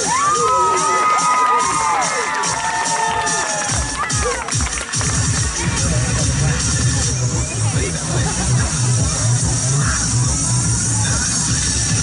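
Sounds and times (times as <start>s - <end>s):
young voices cheering and shouting: 0.0s - 4.5s
dance music with heavy beat: 0.0s - 12.0s.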